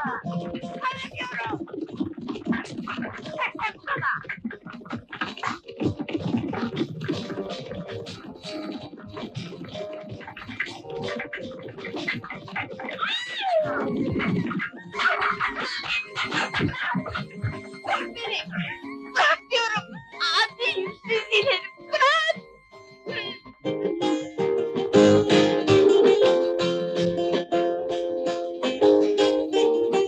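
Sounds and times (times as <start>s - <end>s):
galloping horse hoofbeats: 0.0s - 22.4s.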